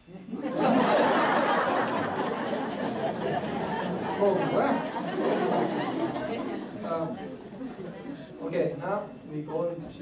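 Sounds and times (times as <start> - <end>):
indistinct chatter: 0.4 - 10.0.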